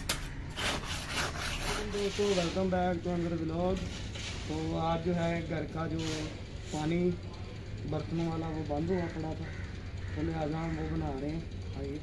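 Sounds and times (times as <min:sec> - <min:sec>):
trowel scraping wet cement mix: 0:00.5 - 0:07.0.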